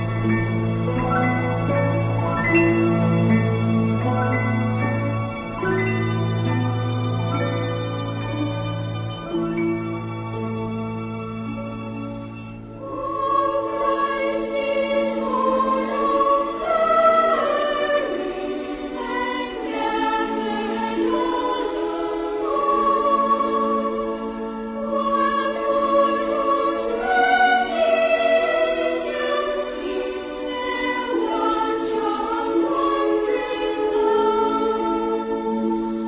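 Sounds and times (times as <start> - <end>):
chorus singing a carol: 0.0 - 10.4, 12.6 - 36.0.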